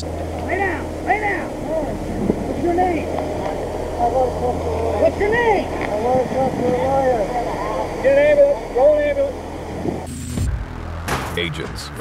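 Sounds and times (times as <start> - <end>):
people talking: 0.0 - 9.5, 11.4 - 12.0
steady low hum: 0.0 - 11.1.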